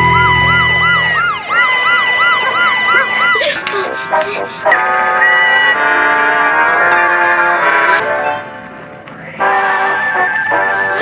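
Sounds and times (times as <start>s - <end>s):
cartoon siren whooping: 0.0s - 5.8s
steady high tone: 0.0s - 5.8s.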